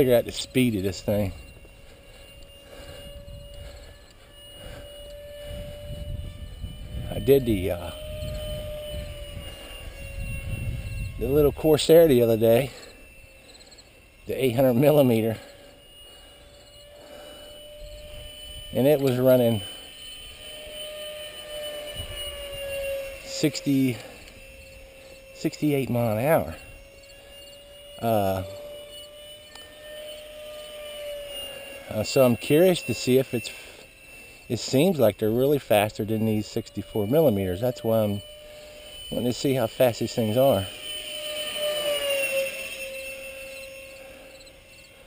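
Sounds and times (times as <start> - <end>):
model jet fan whine: 0.0 - 45.0.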